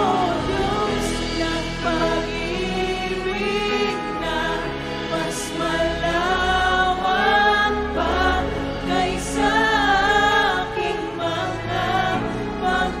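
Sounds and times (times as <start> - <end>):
backing singers: 0.0 - 13.0
woman singing lead: 0.0 - 13.0
worship band playing: 0.0 - 13.0.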